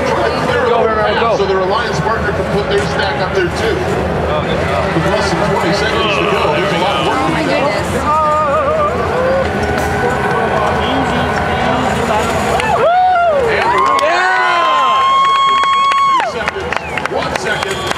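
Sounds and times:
arena crowd cheering: 0:04.9 - 0:17.9
swooping electronic tones: 0:05.3 - 0:12.8.

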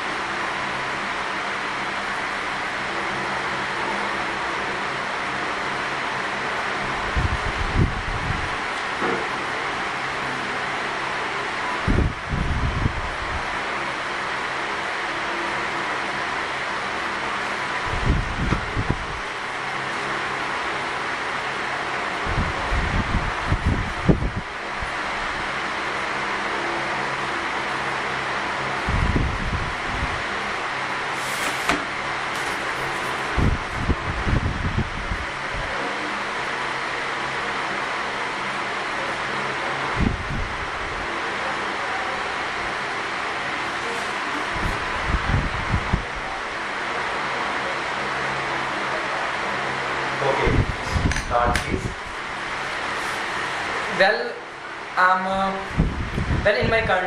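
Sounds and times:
room hiss and hum: 0:00.0 - 0:57.0.

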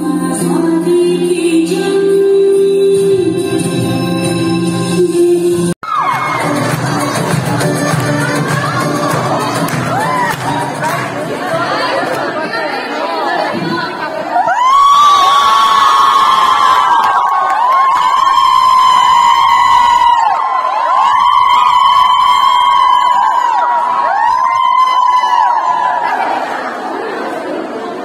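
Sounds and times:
chorus of high-pitched voices: 0:04.9 - 0:14.7, 0:25.4 - 0:28.0
audience cheering and shouting: 0:05.8 - 0:27.3.

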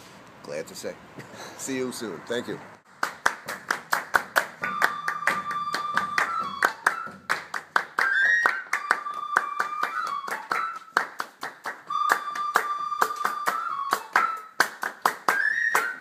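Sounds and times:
group hand-clapping: 0:02.9 - 0:16.0
flute-like wind instrument: 0:04.6 - 0:16.0.

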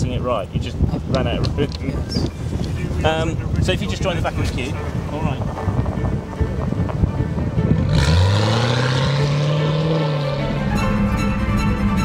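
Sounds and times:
background music: 0:02.8 - 0:12.0
car engine accelerating: 0:07.6 - 0:12.0.

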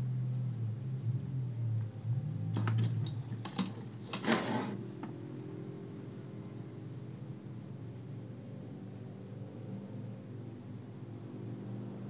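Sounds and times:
scraping rub: 0:03.7 - 0:04.9.

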